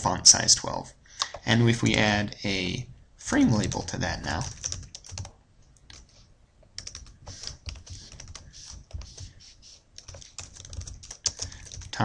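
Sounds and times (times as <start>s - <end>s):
computer keyboard typing: 3.6s - 6.0s, 6.8s - 12.0s.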